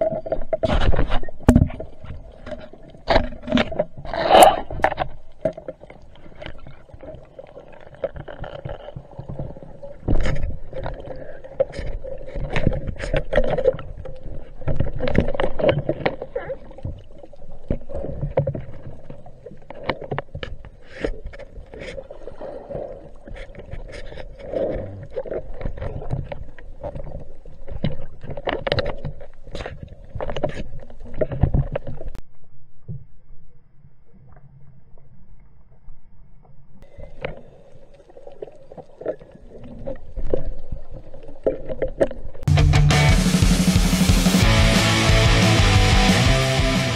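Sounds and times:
water sloshing and bubbling underwater: 0.0 - 42.5.

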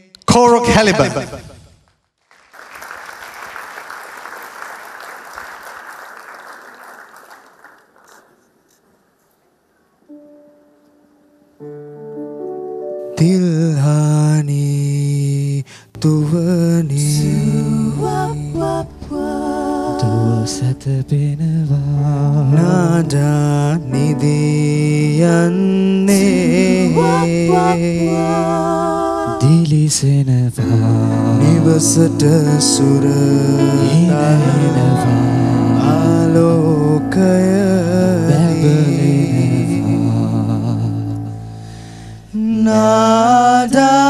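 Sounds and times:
audience applause: 2.2 - 8.5
keyboard playing slow song: 10.0 - 44.0
male lead voice singing: 13.2 - 18.5, 19.9 - 41.3, 42.3 - 44.0
backing singers humming: 17.2 - 21.2, 26.0 - 29.7, 30.6 - 41.3.

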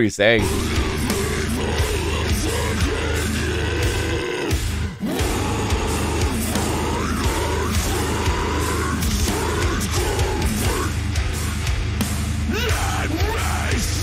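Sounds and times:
guttural screamed vocals: 0.4 - 11.3, 12.5 - 14.0
distorted guitars: 0.4 - 14.0
drums: 0.4 - 14.0.

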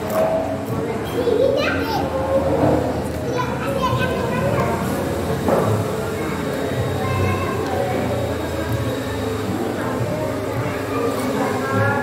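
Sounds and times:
children calling and talking: 0.0 - 12.0
people talking: 0.1 - 12.0.

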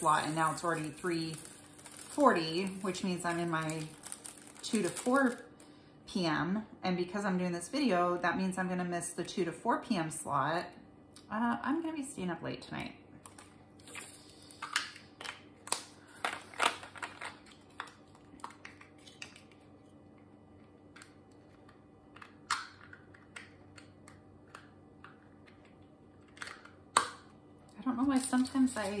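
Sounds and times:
plastic bags crinkling: 0.0 - 5.7, 15.2 - 19.7, 28.0 - 29.0.

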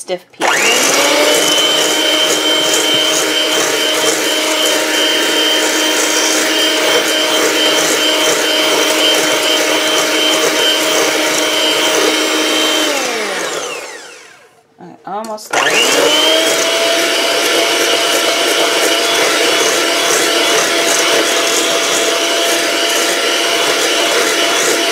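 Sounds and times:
electric hand mixer whipping: 0.4 - 14.6, 15.5 - 24.9
mixer motor winding down: 0.4 - 14.6, 15.5 - 24.9.

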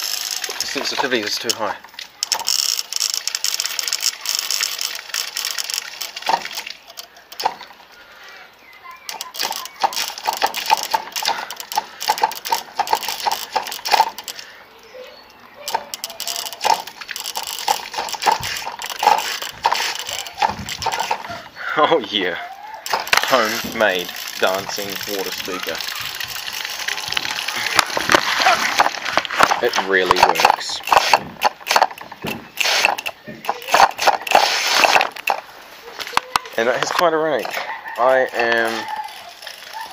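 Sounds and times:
solenoid valve clicking and rattling: 9.1 - 14.4, 15.7 - 21.3, 22.8 - 28.2, 29.4 - 35.5.

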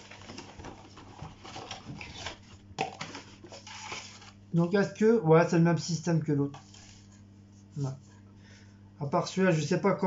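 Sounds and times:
cardboard rustling and scraping: 0.0 - 4.4, 6.5 - 8.2.

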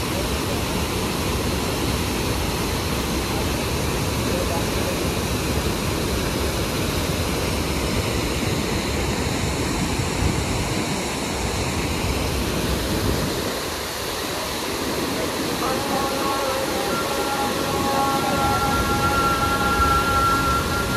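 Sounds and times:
rushing white water: 0.0 - 20.9
music with long held notes: 15.4 - 20.9.

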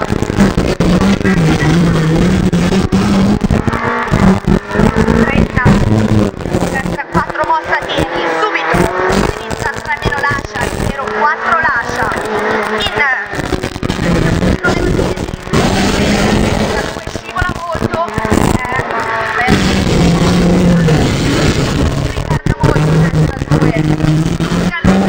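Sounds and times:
car engine revving through gears: 0.0 - 25.0.

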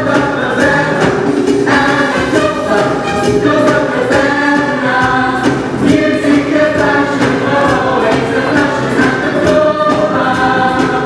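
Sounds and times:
chorus singing a show tune: 0.0 - 11.0
live band playing: 0.0 - 11.0.

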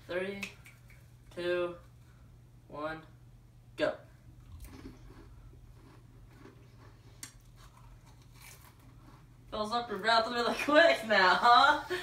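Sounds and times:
chewing crackers: 4.4 - 9.5.

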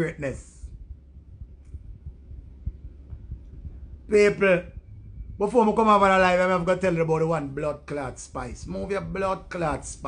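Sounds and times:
low uneven rumble: 0.0 - 10.0
faint irregular thumps: 0.7 - 4.1.

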